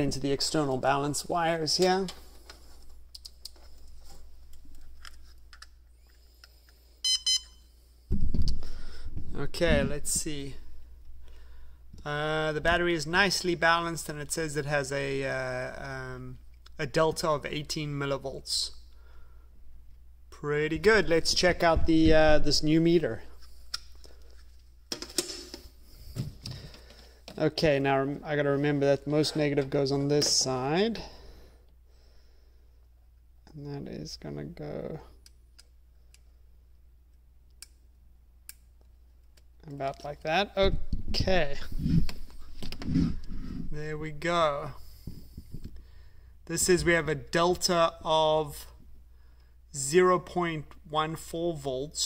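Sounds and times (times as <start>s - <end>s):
short high beeps: 7.0s - 7.7s
low rumble of handling noise: 8.1s - 11.3s.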